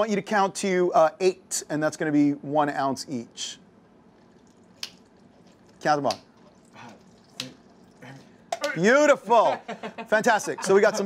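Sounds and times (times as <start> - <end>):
liquid pouring over ice: 4.2 - 8.4.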